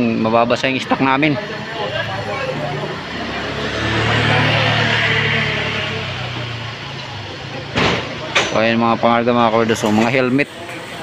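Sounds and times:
vehicle engine passing by: 1.3s - 8.3s.

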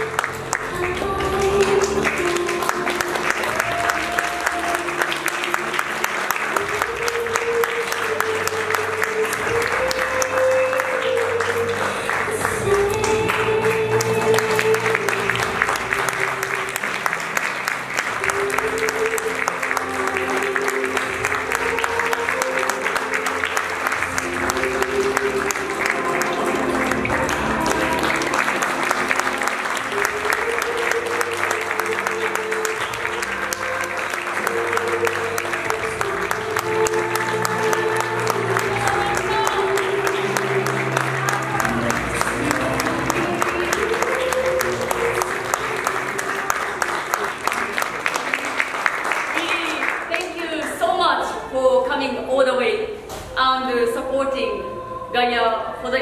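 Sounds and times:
slow melodic background music: 0.0s - 49.4s
audience applauding: 0.0s - 51.5s.

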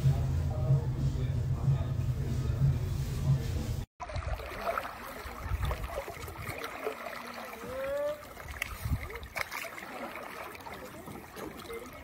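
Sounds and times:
paddle splashing water: 4.0s - 12.0s.

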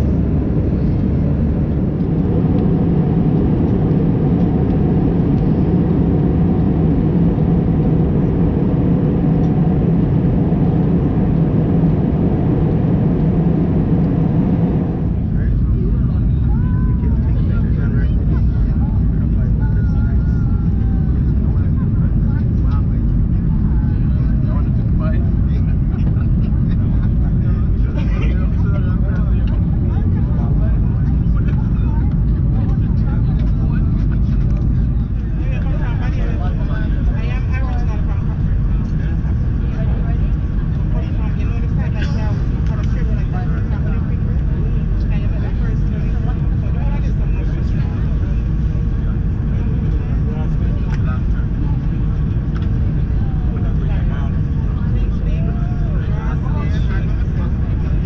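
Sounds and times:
airliner cabin engine rumble: 0.0s - 58.0s.

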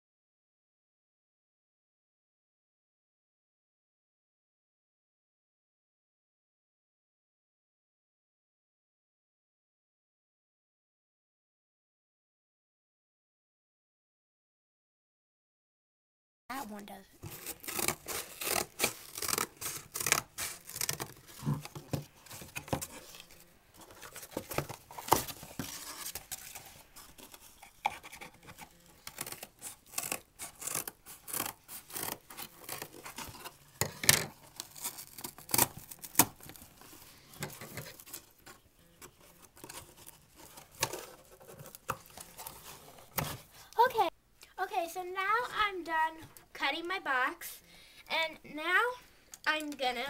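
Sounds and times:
scissors cutting cardboard: 17.2s - 43.6s.

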